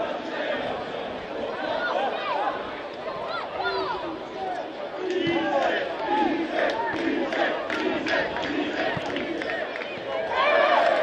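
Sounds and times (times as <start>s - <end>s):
football crowd chanting: 0.0s - 11.0s.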